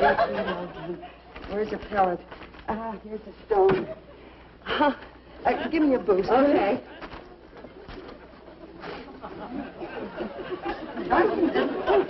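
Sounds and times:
audience laughter: 0.0 - 1.2, 5.4 - 12.0.

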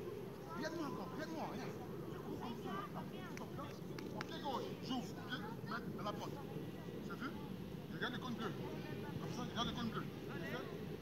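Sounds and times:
children chattering and calling: 0.0 - 7.9, 8.5 - 9.4.

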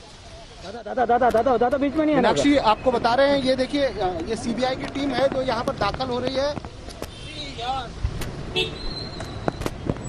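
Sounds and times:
street traffic noise: 0.0 - 10.0.

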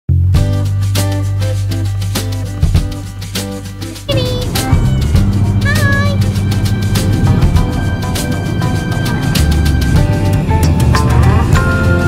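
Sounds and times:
music with steady beat: 0.2 - 12.0.

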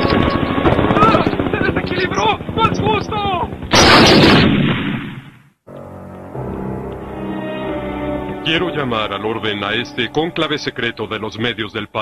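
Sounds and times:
cartoon helicopter rotor chopping: 0.0 - 4.2.

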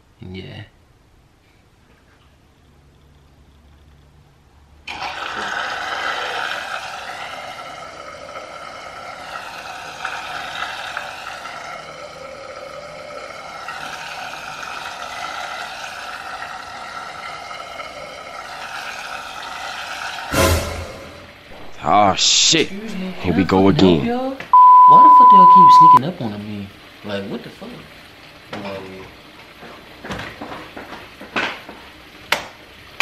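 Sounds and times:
coffee maker hissing and pouring: 4.8 - 33.0.

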